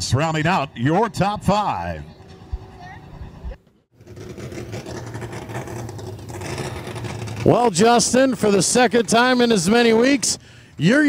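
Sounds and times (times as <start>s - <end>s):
car engine idling: 4.0s - 11.0s.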